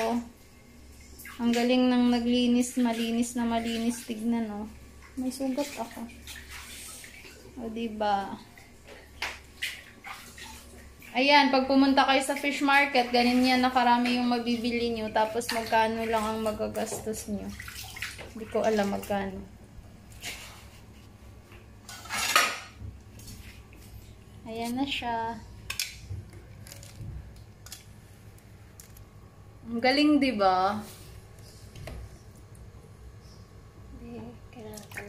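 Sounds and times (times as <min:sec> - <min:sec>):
woman speaking: 0:00.0 - 0:00.3, 0:01.4 - 0:06.1, 0:07.6 - 0:08.4, 0:11.1 - 0:17.5, 0:18.4 - 0:19.5, 0:24.4 - 0:25.5, 0:29.6 - 0:31.0.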